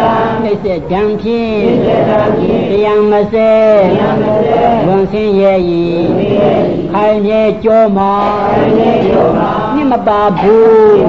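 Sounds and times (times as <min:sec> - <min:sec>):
man chanting in long held tones: 0:00.0 - 0:11.0.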